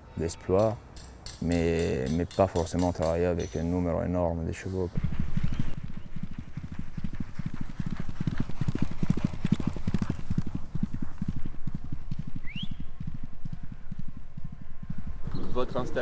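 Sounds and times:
horse galloping on turf: 0:04.9 - 0:15.7.

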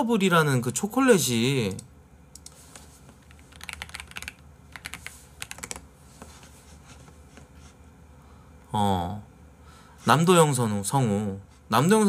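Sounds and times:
typing on computer keyboard: 0:03.2 - 0:05.8.

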